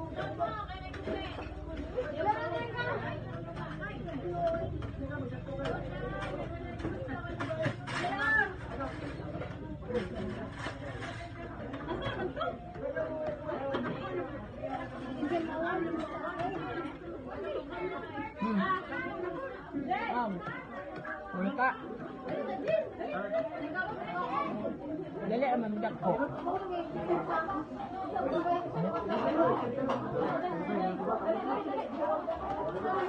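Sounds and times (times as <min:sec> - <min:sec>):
overlapping conversational chatter: 0:00.0 - 0:33.0.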